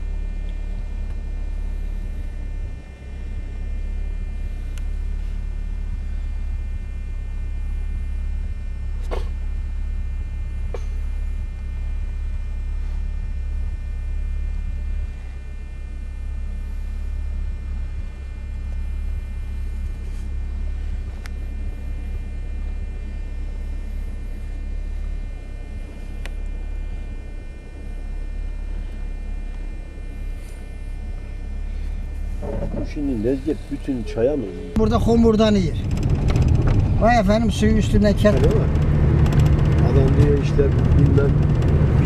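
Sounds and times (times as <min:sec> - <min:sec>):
vehicle driving over rough road: 0:34.8 - 0:42.0.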